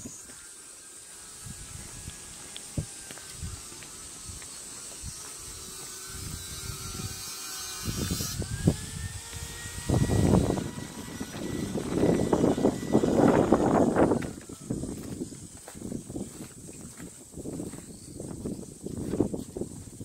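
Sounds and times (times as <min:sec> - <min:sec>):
high-pitched hiss: 0:00.0 - 0:09.3, 0:12.1 - 0:20.0
distant engine hum: 0:00.0 - 0:16.7
wind rumble on microphone: 0:01.3 - 0:20.0
footsteps on pavement: 0:01.5 - 0:06.1, 0:13.4 - 0:20.0.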